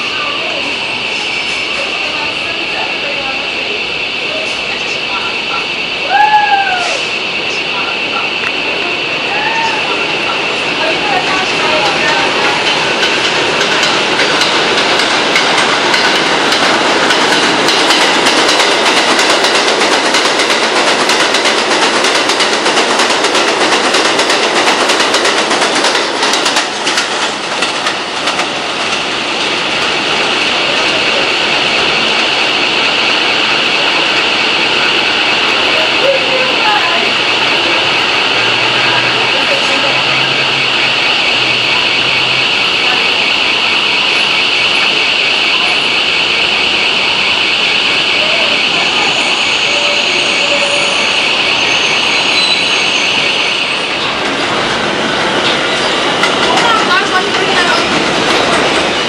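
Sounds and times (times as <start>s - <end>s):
subway train on elevated track: 0.0s - 59.0s
wheels clicking over rail joints: 55.3s - 59.0s.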